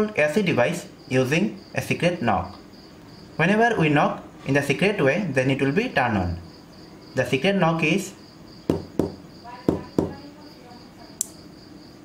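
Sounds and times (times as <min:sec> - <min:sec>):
fingertip knocks on loudspeaker: 0:08.7 - 0:10.2.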